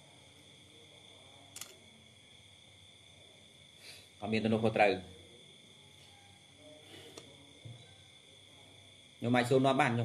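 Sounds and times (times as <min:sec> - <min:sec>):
faint high-pitched hum: 0:00.0 - 0:10.0.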